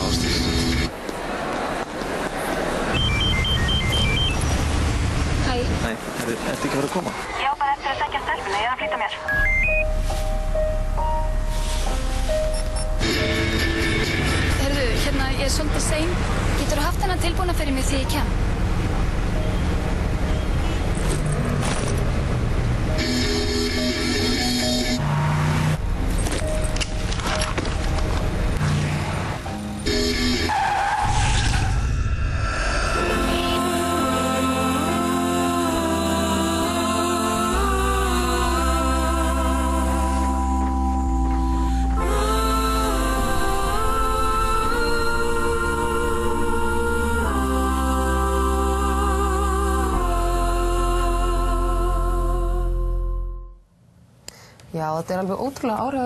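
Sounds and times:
mobile phone ringtone beeps: 8.9 - 10.0, 23.0 - 25.0
car tyres squealing: 23.0 - 25.8, 29.9 - 33.6.

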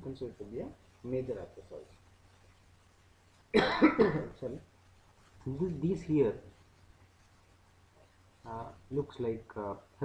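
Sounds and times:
man coughing loudly: 3.6 - 4.3.

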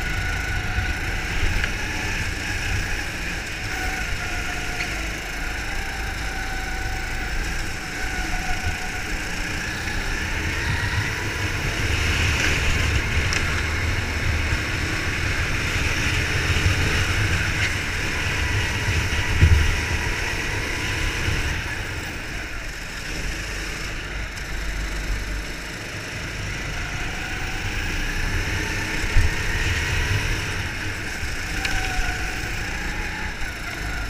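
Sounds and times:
go-kart engine accelerating: 0.0 - 34.0.

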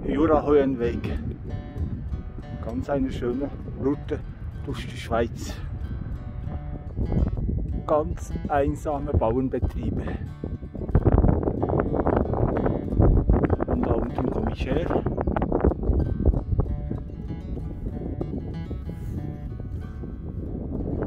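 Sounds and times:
acoustic guitar music: 0.0 - 21.0
wind buffeting microphone: 0.0 - 21.0.

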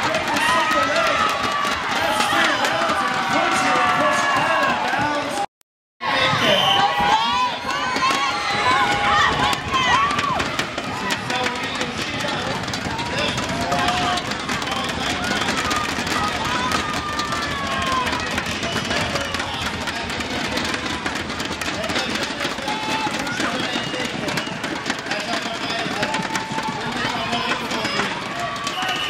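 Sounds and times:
voices shouting and calling out: 0.0 - 21.0
crowd hubbub: 0.0 - 29.0.

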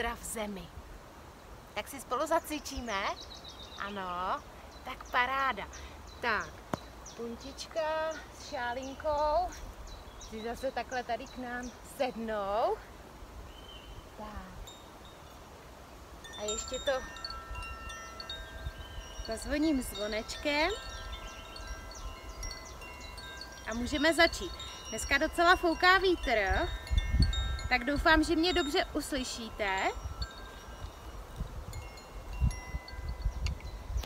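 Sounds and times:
small hand bell ringing: 16.3 - 31.0, 31.6 - 33.8
wind rumble on microphone: 16.4 - 34.0.

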